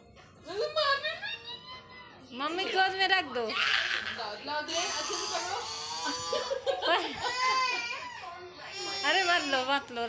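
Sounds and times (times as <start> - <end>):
toddler crying: 3.5 - 9.8.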